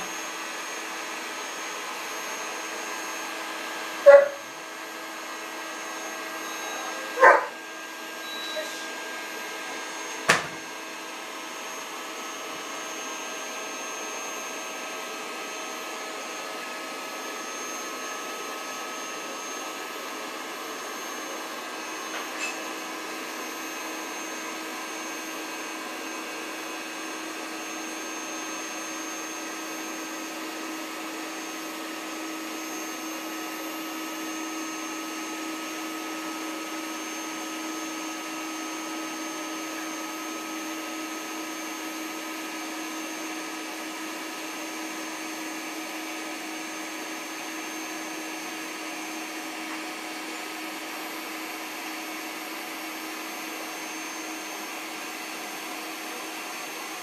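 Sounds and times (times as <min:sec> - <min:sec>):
electric air pump running: 0:00.0 - 0:57.0.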